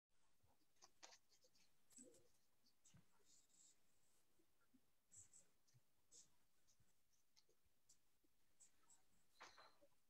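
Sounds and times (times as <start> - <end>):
soft clicks and rustles: 0.5 - 3.8.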